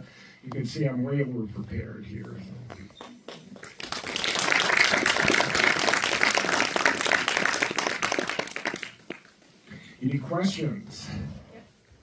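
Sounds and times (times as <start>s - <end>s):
audience applauding: 2.9s - 9.4s.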